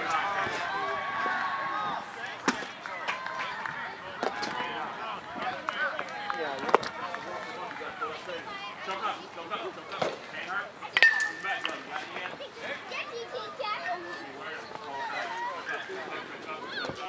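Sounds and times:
voices chattering: 0.0 - 17.0
metal bat hitting ball: 11.0 - 11.8.

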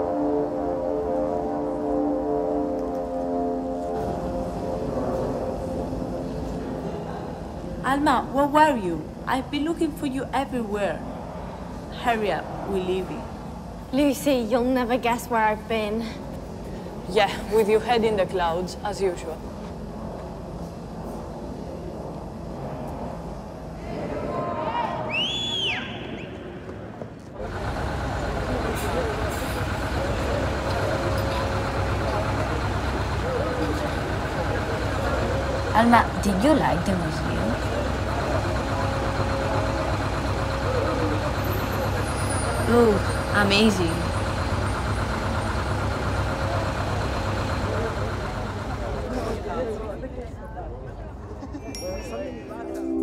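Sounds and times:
faint passenger voices: 2.8 - 25.2, 26.3 - 53.0
bus engine rumble: 26.8 - 53.0
murmur of young voices: 46.0 - 53.0.

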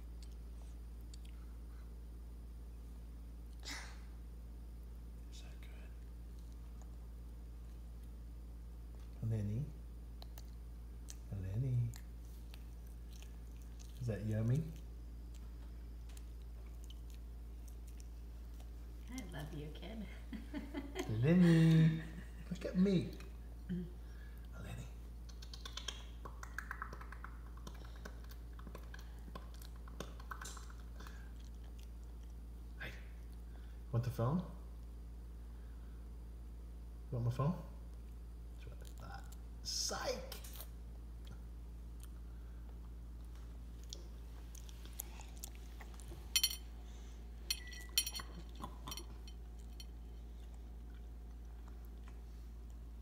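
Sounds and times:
steady low hum: 0.0 - 53.0
faint whisper-like sound: 5.2 - 6.1
toddler chewing bread: 11.9 - 19.3, 40.4 - 46.4, 47.8 - 52.8.

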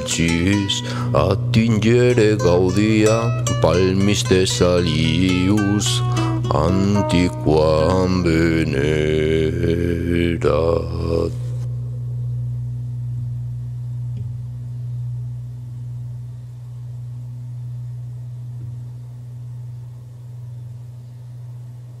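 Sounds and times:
low musical drone: 0.0 - 16.0.

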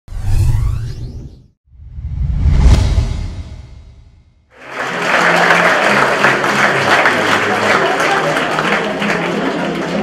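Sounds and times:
whoosh sound effects: 0.1 - 4.4
deep rumble: 1.7 - 4.4.

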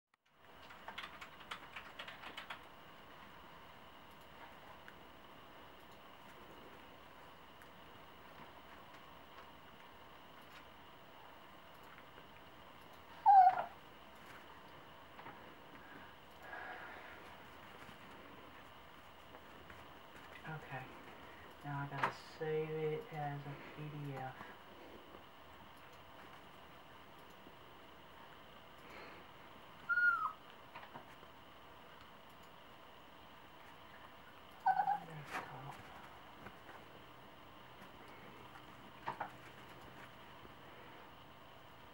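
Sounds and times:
dog whining: 13.2 - 13.8, 29.8 - 30.4, 34.6 - 35.1.

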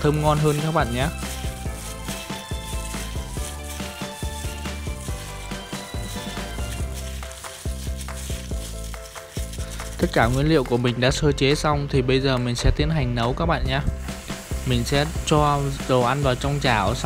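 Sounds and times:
gloved hand squelching food: 0.0 - 11.6
background music with bass line: 0.0 - 17.0.

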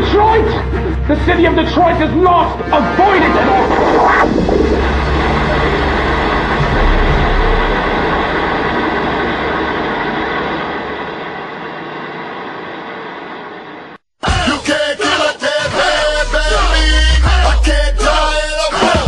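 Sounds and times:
deep low drone: 0.0 - 14.0
steady rumbling noise: 0.0 - 14.0.

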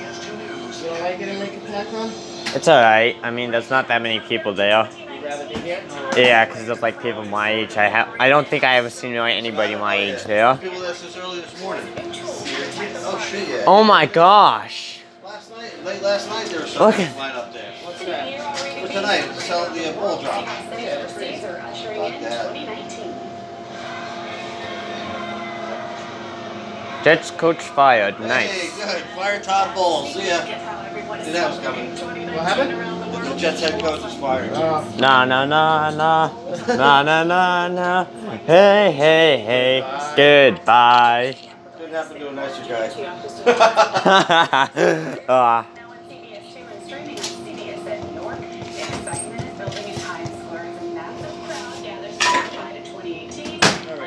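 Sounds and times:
steady mechanical hum: 0.0 - 54.0
dishes and utensils clattering: 52.1 - 52.7.

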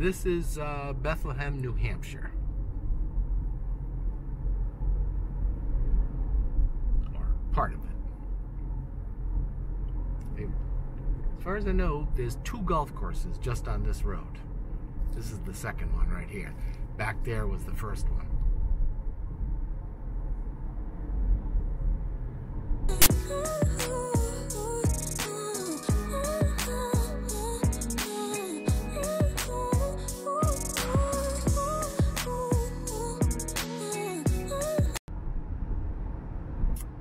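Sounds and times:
car road noise rumble: 0.0 - 24.8.

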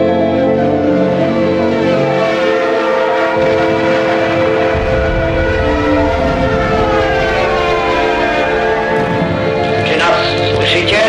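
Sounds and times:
train whistle: 0.0 - 9.6
sad string music: 0.0 - 11.0
train rumbling: 1.2 - 11.0.

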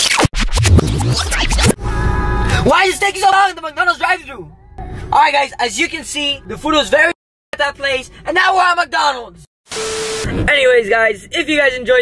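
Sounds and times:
record scratch effect: 0.0 - 1.8.

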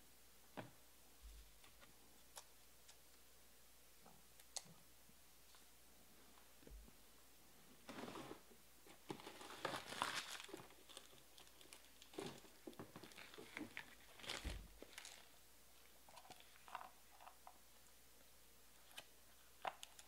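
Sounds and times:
wrappers crinkling and tearing: 9.1 - 15.4.

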